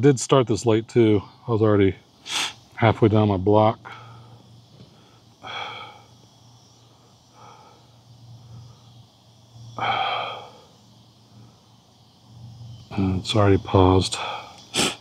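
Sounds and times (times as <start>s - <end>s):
person exhaling hard: 2.3s - 2.6s, 5.4s - 6.1s, 9.8s - 10.7s, 14.2s - 15.0s.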